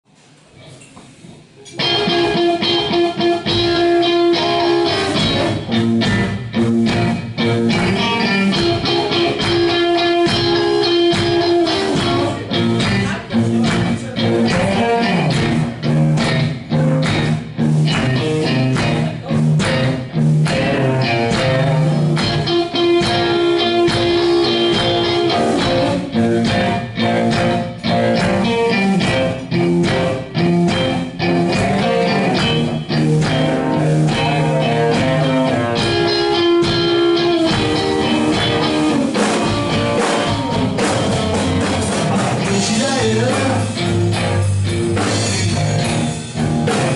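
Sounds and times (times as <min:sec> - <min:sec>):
drum kit: 0:01.4 - 0:46.9
electric guitars: 0:01.6 - 0:46.9.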